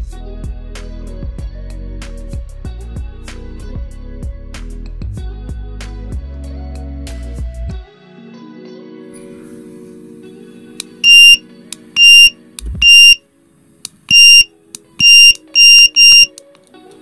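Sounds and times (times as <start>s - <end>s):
timer beeping: 11.0s - 11.4s, 12.0s - 13.2s, 14.1s - 16.4s
button clicks: 14.1s - 16.4s.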